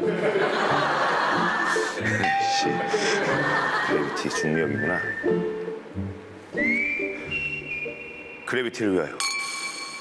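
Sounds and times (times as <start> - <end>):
sustained chords: 2.0 - 4.7
whistle-like sliding tone: 6.6 - 8.6.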